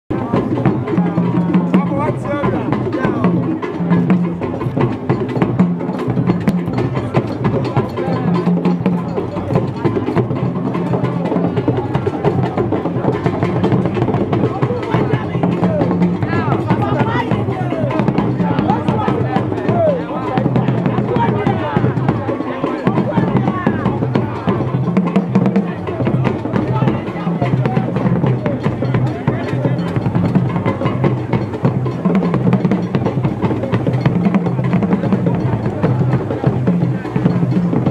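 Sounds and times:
crowd of overlapping voices: 0.1s - 37.9s
drums and percussion: 0.1s - 37.9s.

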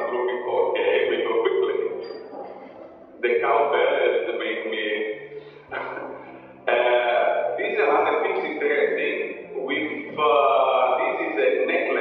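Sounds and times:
person speaking: 0.0s - 12.0s.

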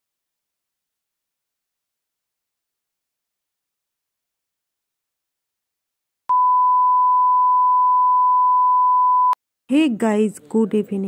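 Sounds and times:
steady electronic beep: 6.3s - 9.4s.

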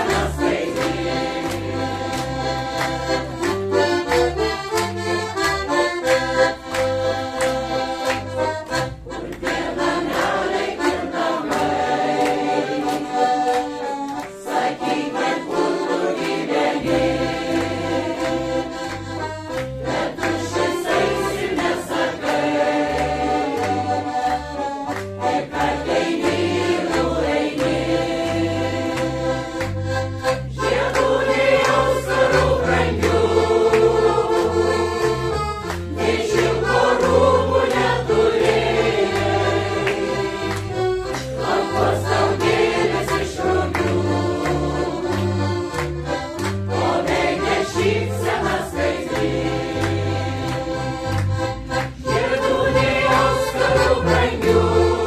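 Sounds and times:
mixed choir singing: 0.0s - 3.3s, 9.1s - 18.9s, 19.8s - 35.2s, 35.9s - 45.5s, 46.7s - 51.1s, 52.0s - 55.0s
accordion accompaniment: 0.0s - 55.0s.

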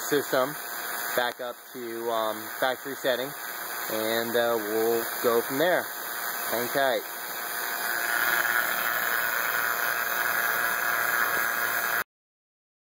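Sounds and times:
vacuum pump running: 0.0s - 12.0s.

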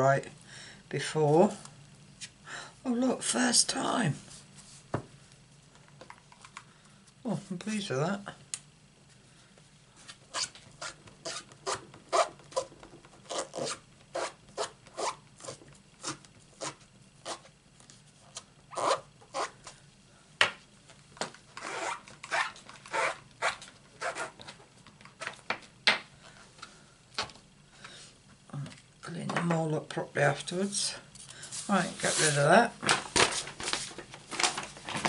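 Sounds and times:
hand scrubbing a surface: 31.5s - 32.5s.

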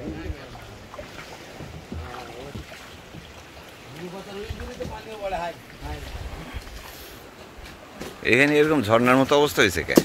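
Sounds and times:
water current rushing: 0.0s - 10.0s
water washing against boat: 0.0s - 10.0s
wind buffeting microphone: 4.2s - 7.9s.

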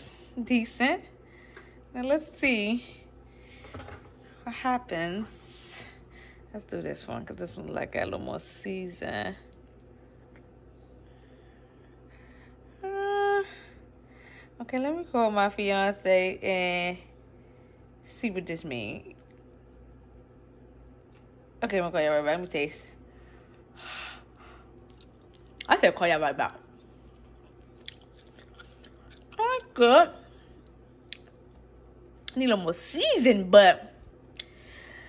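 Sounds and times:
faint low hum: 0.0s - 35.0s
woman humming: 12.7s - 13.8s
person chewing: 24.8s - 25.7s, 26.7s - 29.4s, 30.6s - 32.4s.

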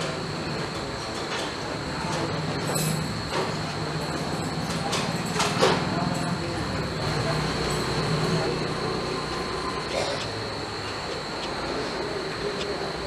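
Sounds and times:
thin high whine: 0.0s - 13.0s.

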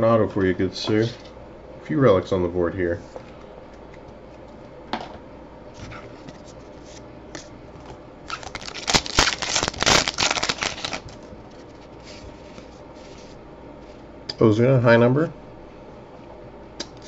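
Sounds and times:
wrapper tearing and crinkling: 8.3s - 11.2s.

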